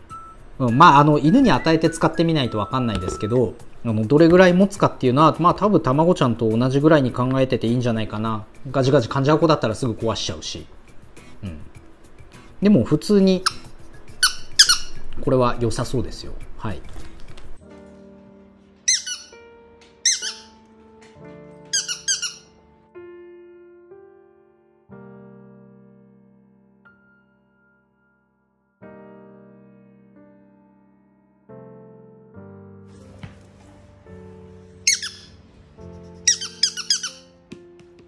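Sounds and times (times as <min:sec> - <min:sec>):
soft electric piano music: 0:00.0 - 0:38.0
dog toy squeaking: 0:13.4 - 0:15.0, 0:18.9 - 0:19.4, 0:20.0 - 0:20.6, 0:21.7 - 0:22.6, 0:34.9 - 0:35.4, 0:36.2 - 0:37.3.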